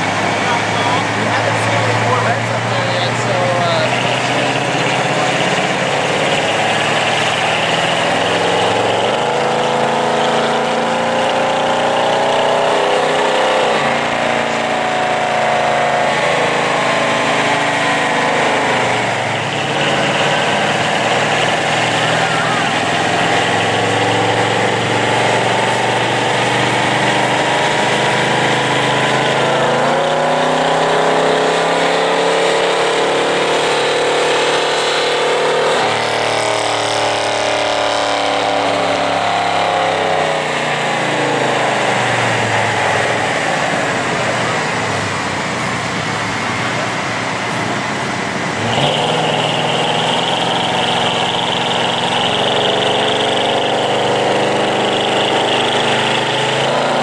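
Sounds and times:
pickup engine revving: 0.0 - 57.0.

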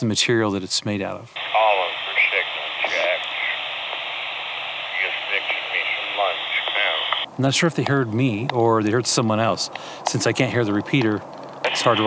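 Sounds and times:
radio static hiss: 1.4 - 7.3, 11.6 - 12.0
faint broken radio voices: 1.4 - 12.0.

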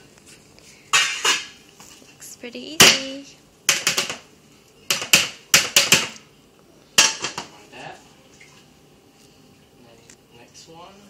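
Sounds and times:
frying pan knocking on metal tray: 3.7 - 4.2, 4.9 - 6.2.

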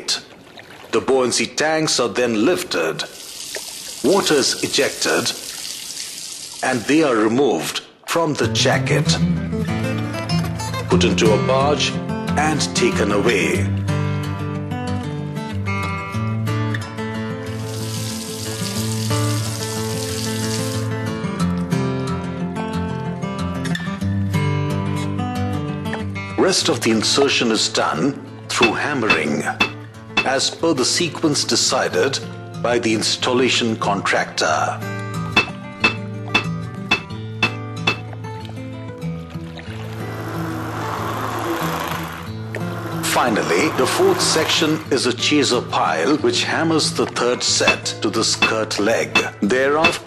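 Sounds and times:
water pouring and draining: 0.0 - 7.3, 17.5 - 21.0, 28.6 - 30.6, 39.3 - 44.9
background music: 8.4 - 50.0
background music with sustained notes: 34.4 - 49.1.

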